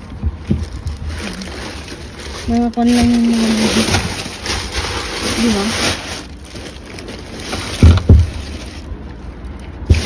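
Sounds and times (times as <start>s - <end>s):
rustling: 0.0s - 10.0s.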